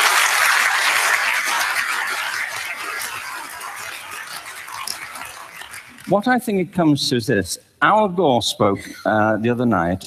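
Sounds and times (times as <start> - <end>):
audience applause: 0.0 - 6.5.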